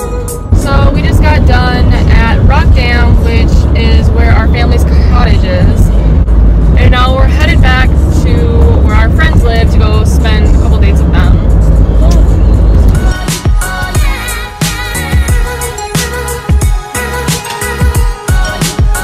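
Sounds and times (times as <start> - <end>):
women singing along to music: 0.0 - 6.0, 12.1 - 19.0
low road rumble: 0.0 - 19.0.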